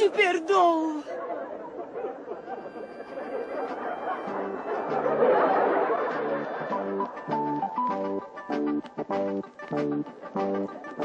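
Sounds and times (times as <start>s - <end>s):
audience laughter and murmuring: 1.0s - 7.6s
background music: 2.0s - 11.0s.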